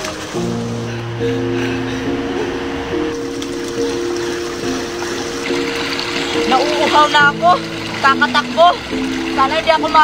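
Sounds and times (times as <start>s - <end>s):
running water hiss: 0.0s - 1.3s, 3.1s - 10.0s.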